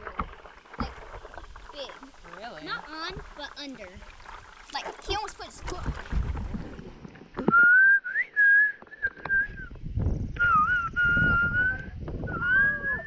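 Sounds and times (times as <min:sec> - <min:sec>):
water: 0:00.0 - 0:13.0
wind noise: 0:04.0 - 0:07.8, 0:09.0 - 0:13.0
person whistling: 0:07.4 - 0:09.7, 0:10.4 - 0:13.0.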